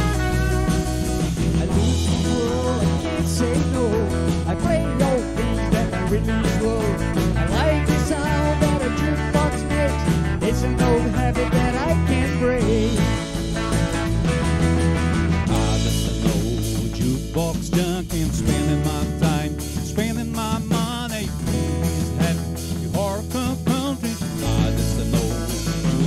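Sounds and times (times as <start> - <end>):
bent guitar lead line: 0.0 - 26.0
live country band playing: 0.0 - 26.0.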